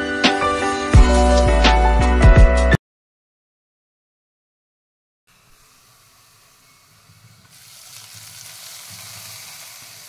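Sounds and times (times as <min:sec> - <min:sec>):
hot oil sizzling on curry: 0:05.3 - 0:10.0.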